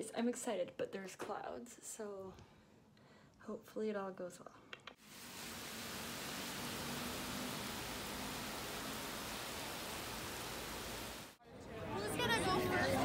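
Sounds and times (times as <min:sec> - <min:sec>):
heavy rain on pavement: 0:05.0 - 0:11.4.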